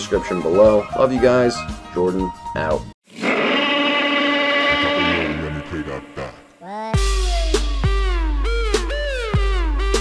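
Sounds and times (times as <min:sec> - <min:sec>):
electronic creature roar: 0:03.1 - 0:06.6.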